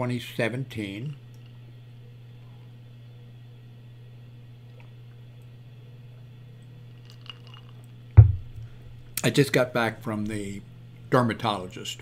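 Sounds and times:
glass thud on desk: 8.2s - 8.6s
low hum: 8.2s - 9.2s.

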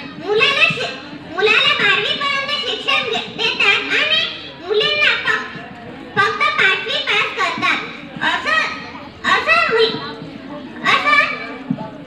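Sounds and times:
child speaking into a microphone: 0.0s - 12.0s.

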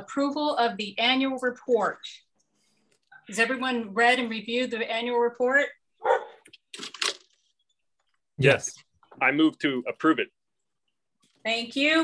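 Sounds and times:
dog barking: 6.0s - 6.4s.

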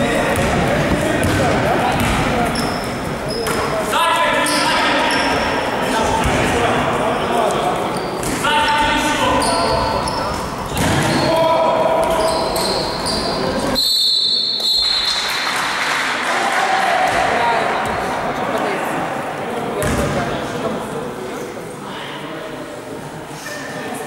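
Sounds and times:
sneakers squeaking: 0.0s - 6.4s, 7.2s - 15.3s, 19.8s - 20.2s
basketball bouncing on court: 0.3s - 2.8s, 19.8s - 20.2s.

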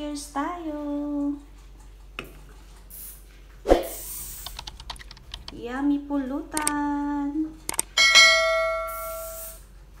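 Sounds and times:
notification bell ding: 8.0s - 9.2s.

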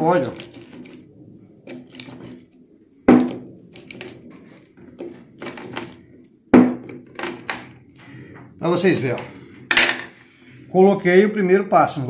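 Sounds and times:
sharp knocks: 6.5s - 7.3s.

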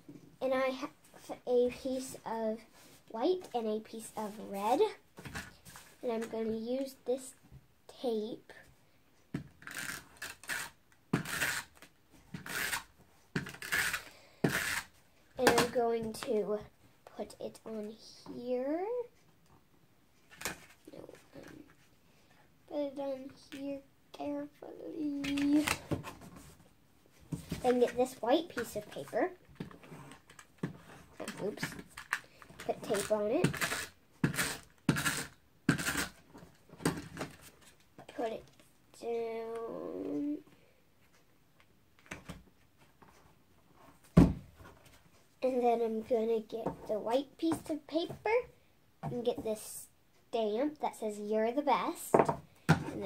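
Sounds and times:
tape runner scraping paper: 9.6s - 14.9s.

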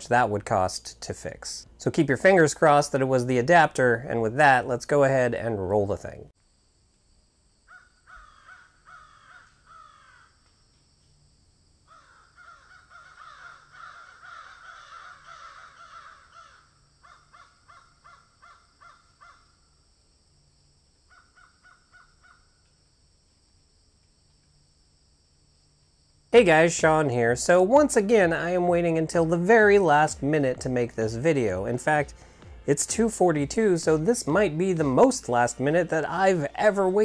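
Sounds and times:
birds cawing: 7.7s - 10.4s, 11.9s - 19.6s, 21.1s - 22.6s.

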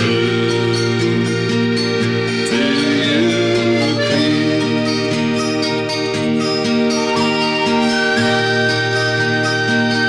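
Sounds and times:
accordion folk melody: 0.0s - 10.0s.

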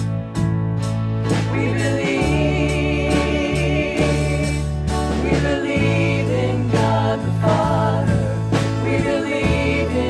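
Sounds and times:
band with steady bass: 0.0s - 10.0s.

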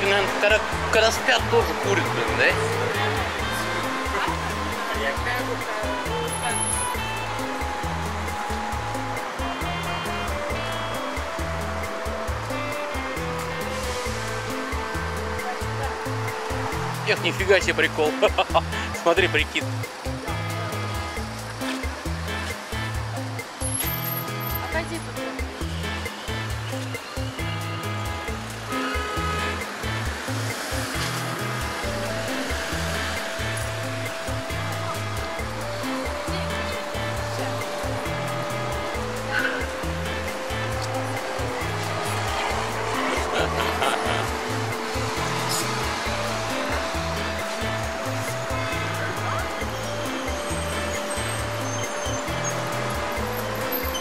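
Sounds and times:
background music with bass line: 0.0s - 54.0s
steady rush of noise: 29.4s - 54.0s.

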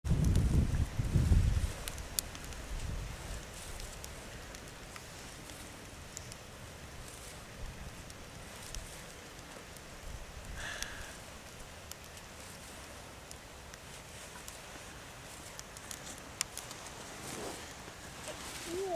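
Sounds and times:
wind buffeting microphone: 0.0s - 9.1s
faint outdoor air hiss: 0.1s - 18.9s
flint striker clicks and scrapes: 8.0s - 9.4s.

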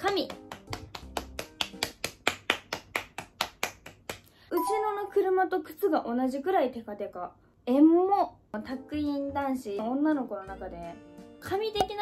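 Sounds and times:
rapid hand clapping: 0.0s - 4.3s.

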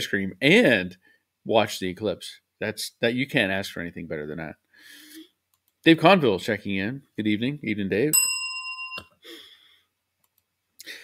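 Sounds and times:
click: 5.5s - 5.8s, 10.2s - 10.5s
small bell ringing: 8.1s - 9.2s.

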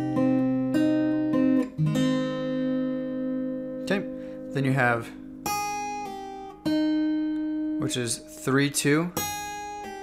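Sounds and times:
acoustic guitar fingerpicked: 0.0s - 10.0s.

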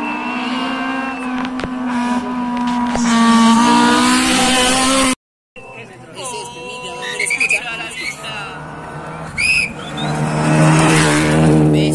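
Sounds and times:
car engine at high revs: 0.0s - 5.2s, 7.6s - 11.9s.

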